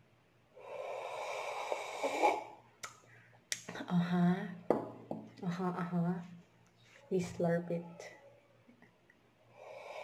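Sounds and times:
coffee slurping: 1.2s - 2.6s.

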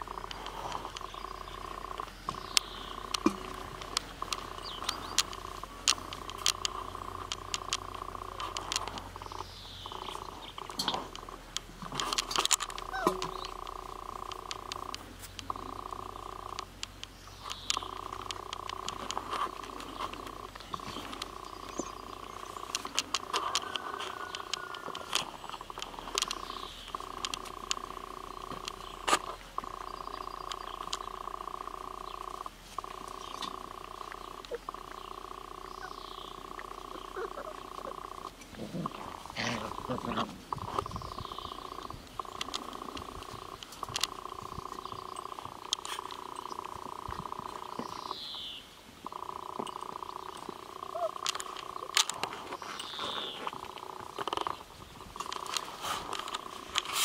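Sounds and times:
droning hum: 0.0s - 57.0s
puppies growling: 0.0s - 57.0s
sharp clicks and taps: 0.1s - 48.1s, 49.0s - 57.0s.

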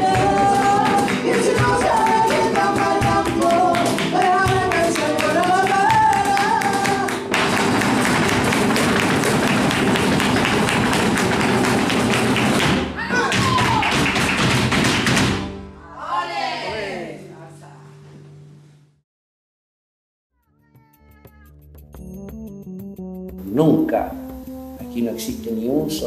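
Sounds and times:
person singing: 0.0s - 7.3s
guitar: 0.0s - 14.2s
hand claps: 0.0s - 15.5s
rapid dance footwork: 0.0s - 15.5s.

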